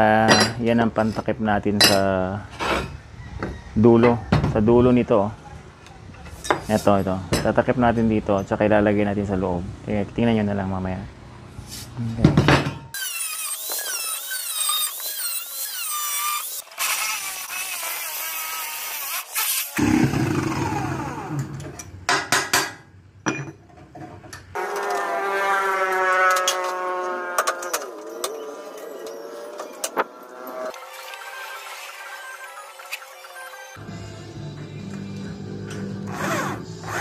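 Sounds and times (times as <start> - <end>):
angle grinder cutting steel: 13.0 - 21.7, 24.6 - 33.8
music: 33.4 - 37.0.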